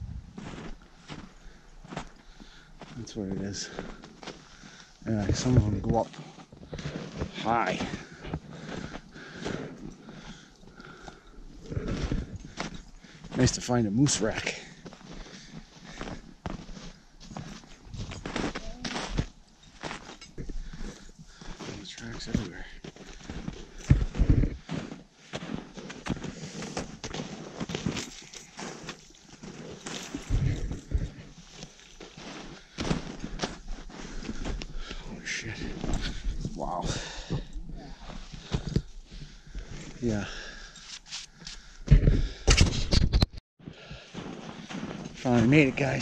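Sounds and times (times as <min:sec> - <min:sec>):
footsteps crunching through snow: 0:00.0 - 0:42.1, 0:43.6 - 0:46.0.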